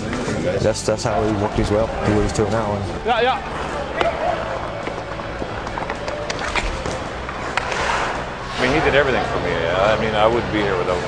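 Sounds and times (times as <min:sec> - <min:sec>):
hockey sticks and pucks clacking: 0:03.2 - 0:11.0
skate blades scraping ice: 0:03.5 - 0:09.4.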